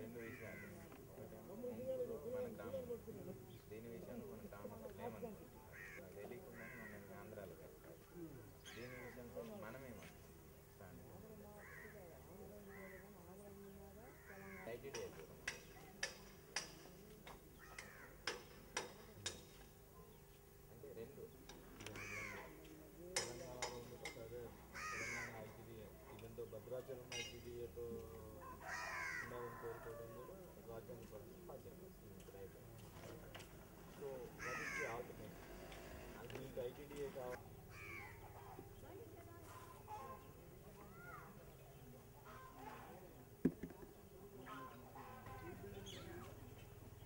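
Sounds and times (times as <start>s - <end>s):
birds calling: 0.0s - 10.7s, 11.6s - 47.0s.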